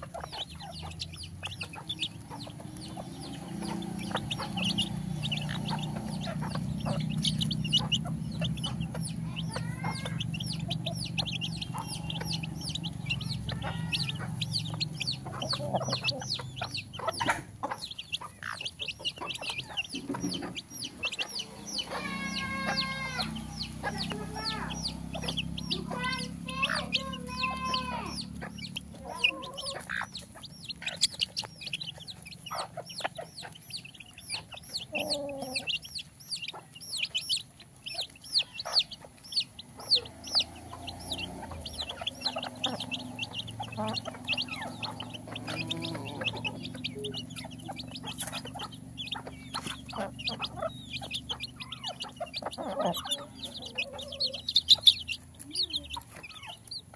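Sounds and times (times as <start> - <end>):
beaks tapping on concrete: 0.0 - 56.9
chicks peeping: 0.0 - 56.9
hen calling: 0.0 - 56.9.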